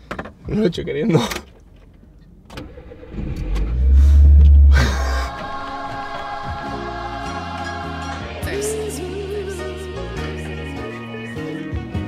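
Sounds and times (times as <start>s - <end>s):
car engine rumbling: 0.0s - 6.7s
men laughing: 4.7s - 5.5s.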